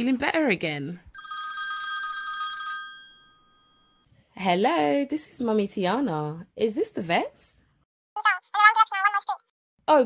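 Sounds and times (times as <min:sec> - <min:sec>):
telephone ringing: 0:01.2 - 0:04.1.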